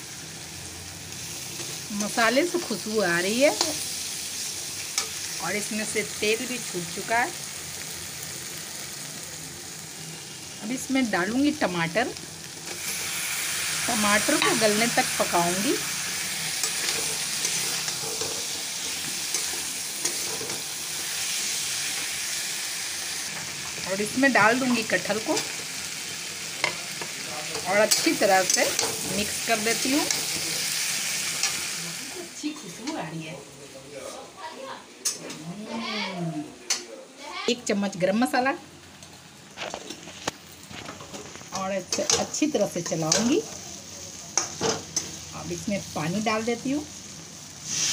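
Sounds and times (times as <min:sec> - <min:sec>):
food sizzling in oil: 0:00.0 - 0:36.1, 0:37.2 - 0:47.9
spatula scraping a pan: 0:16.6 - 0:20.7.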